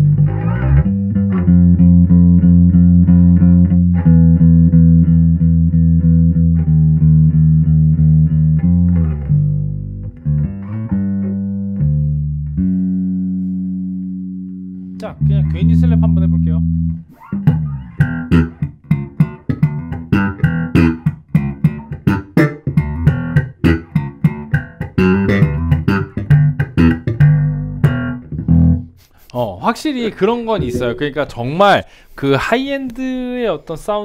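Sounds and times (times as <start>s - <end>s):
electric bass notes: 0.0s - 29.0s
slap bass notes: 0.0s - 29.0s, 30.0s - 31.4s.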